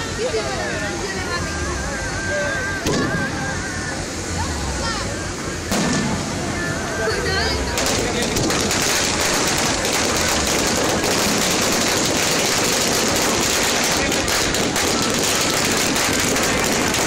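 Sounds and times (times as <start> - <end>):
fireworks crackling: 0.0 - 17.0.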